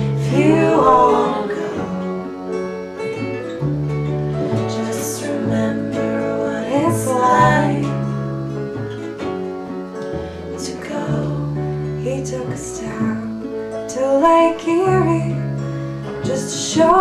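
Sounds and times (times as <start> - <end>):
acoustic guitar strumming: 0.0 - 17.0
electric bass: 0.0 - 17.0.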